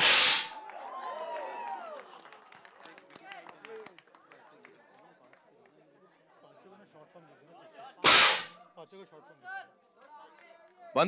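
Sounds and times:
confetti cannon blast: 0.0s - 0.6s, 8.0s - 8.5s
voices whooping and cheering: 0.5s - 2.2s.

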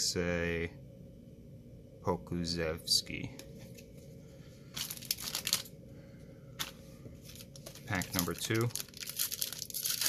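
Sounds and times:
cards rustling: 4.7s - 5.7s, 6.6s - 10.0s
foil wrapper crinkling: 4.8s - 5.7s, 6.6s - 10.0s.

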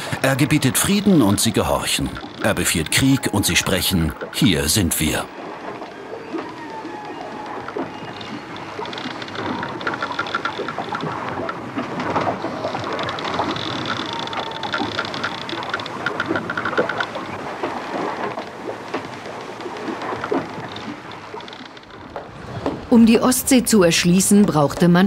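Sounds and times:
rushing water with crackles: 0.0s - 25.0s.

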